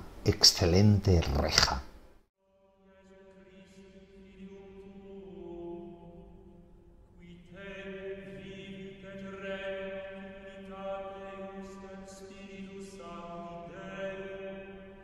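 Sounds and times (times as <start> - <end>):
slow chant-like singing: 2.4 - 15.0.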